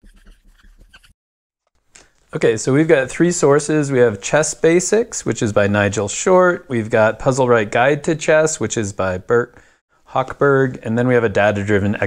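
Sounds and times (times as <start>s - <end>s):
marker squeaking on whiteboard: 0.0s - 1.1s.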